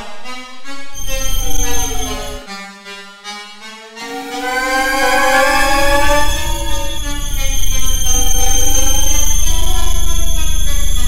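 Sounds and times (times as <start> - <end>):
fast-pulsing low drone: 0.6 - 2.4, 4.1 - 11.0
held electronic tones: 0.7 - 2.4, 4.1 - 11.0.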